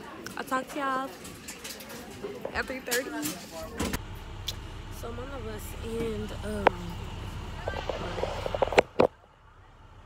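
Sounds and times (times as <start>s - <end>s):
voices talking: 0.0s - 10.0s
bus engine rumble from inside: 3.6s - 10.0s.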